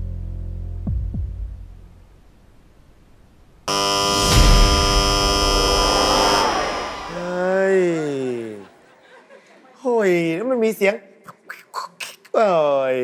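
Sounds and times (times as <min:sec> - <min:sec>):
low throbbing music: 0:03.7 - 0:07.5
game show buzzer: 0:03.7 - 0:08.4.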